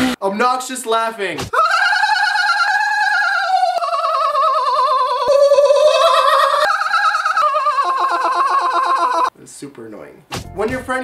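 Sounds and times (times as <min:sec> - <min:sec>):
man laughing in a high wail: 0:01.6 - 0:09.3.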